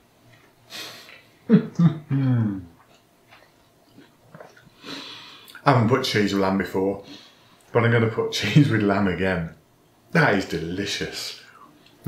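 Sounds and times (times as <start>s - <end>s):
man laughing: 1.5s - 2.7s.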